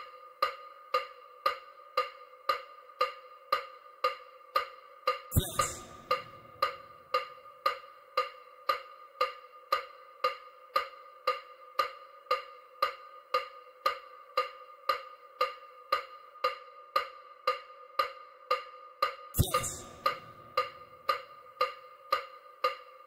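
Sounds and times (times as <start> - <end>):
electronic wood-block ticks: 0.0 - 23.0
steady held tone: 5.3 - 7.0, 19.4 - 21.1.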